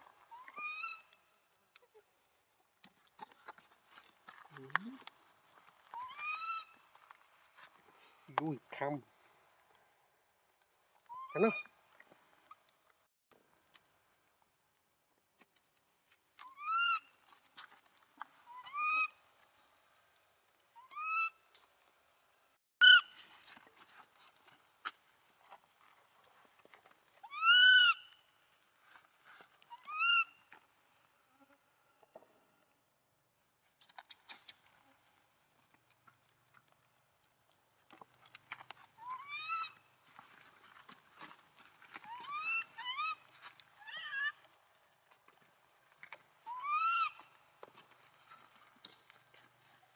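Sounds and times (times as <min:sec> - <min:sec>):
infant monkey crying: 0:27.2 - 0:28.0, 0:43.8 - 0:44.4, 0:46.5 - 0:47.2.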